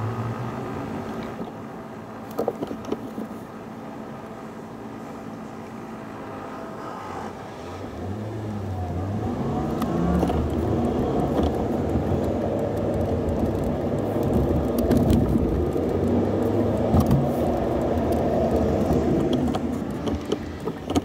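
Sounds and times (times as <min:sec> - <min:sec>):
car pulling away: 0:05.8 - 0:21.0.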